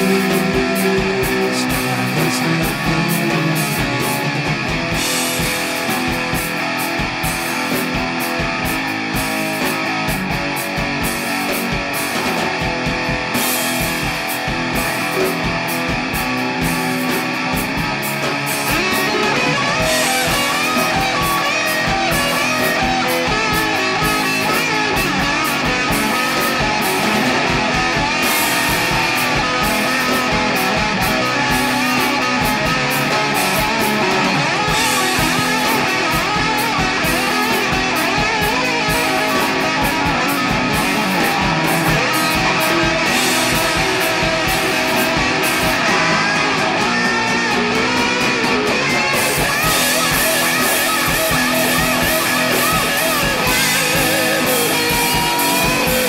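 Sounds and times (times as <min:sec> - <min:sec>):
shoegaze rock music: 0:00.0 - 0:56.0.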